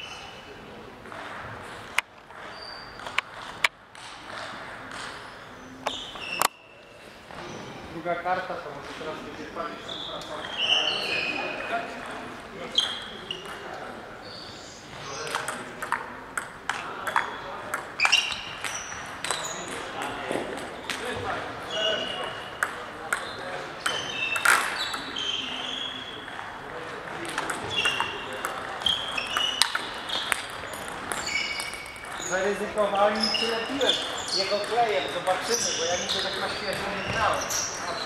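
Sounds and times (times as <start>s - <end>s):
table tennis ball hitting bats: 15.0s - 21.0s, 22.0s - 25.2s, 26.2s - 38.0s
table tennis ball bouncing on table: 15.2s - 21.0s, 22.1s - 25.1s, 27.1s - 32.3s, 34.0s - 35.8s.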